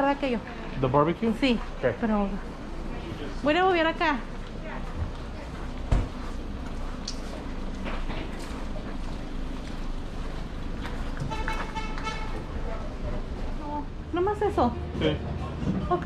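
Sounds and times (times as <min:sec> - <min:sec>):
distant voices: 0:00.0 - 0:16.0
car horn: 0:11.2 - 0:12.5.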